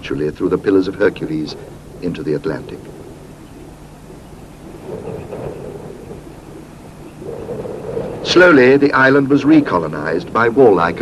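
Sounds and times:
low rumbling: 0.0 - 11.0.

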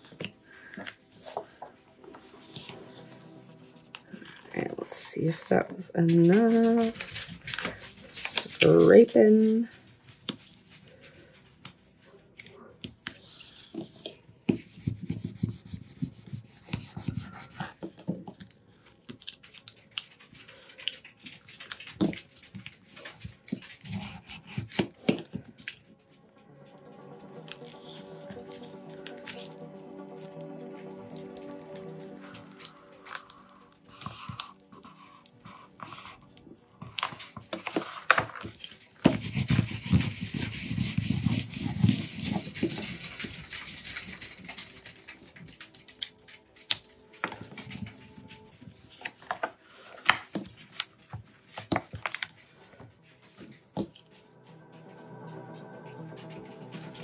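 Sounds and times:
soft background music: 0.0 - 57.0
vinyl rustling and crinkling: 0.0 - 57.0.

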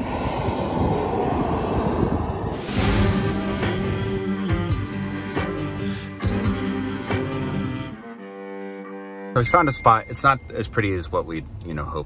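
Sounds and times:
steady rumbling roar: 0.0 - 6.5
background music with guitar: 2.8 - 10.1.

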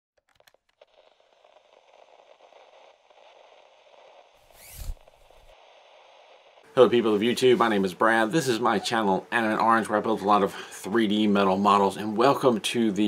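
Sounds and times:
faint crackling hiss: 0.3 - 13.0
whoosh: 1.8 - 6.7.

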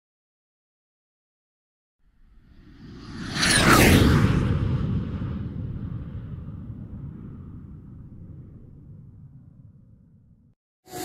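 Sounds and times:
deep low rumbling: 4.2 - 10.5.

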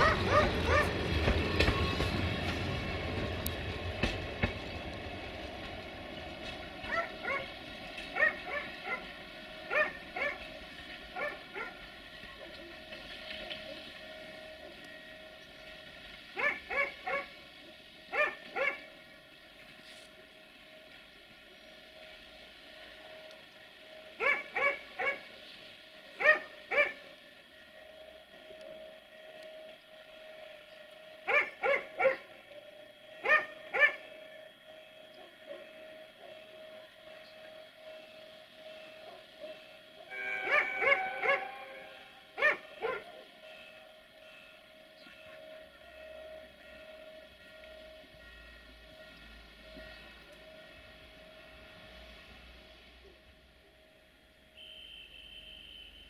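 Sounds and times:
dog barking: 0.0 - 1.0, 6.9 - 7.5, 8.2 - 9.0, 9.7 - 10.4, 11.2 - 11.8, 16.4 - 17.3, 18.1 - 18.8, 24.2 - 25.2, 26.2 - 27.0, 31.3 - 32.3, 33.2 - 34.0, 40.4 - 41.5, 42.4 - 43.2.

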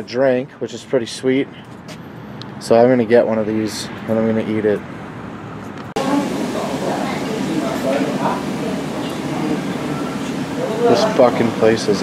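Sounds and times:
indistinct chatter: 6.0 - 12.0.

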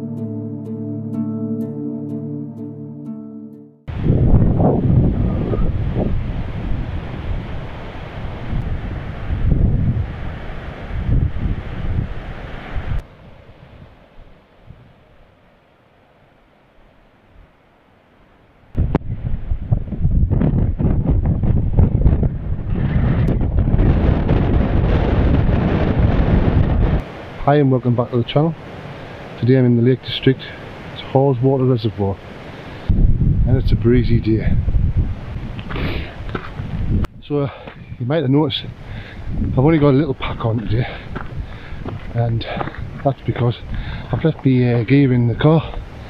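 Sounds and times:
wind buffeting microphone: 3.9 - 13.9, 18.8 - 27.2, 32.8 - 46.0.

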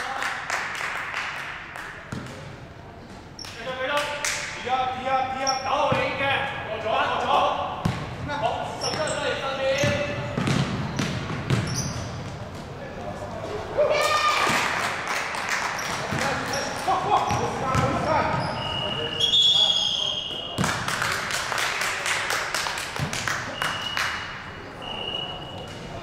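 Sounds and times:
basketball bouncing: 7.8 - 8.3, 9.8 - 12.4, 17.3 - 18.4.

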